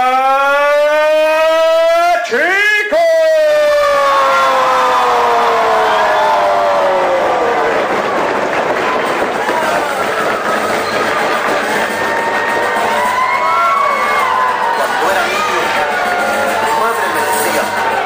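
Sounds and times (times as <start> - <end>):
crowd yelling and cheering: 0.0 - 18.0.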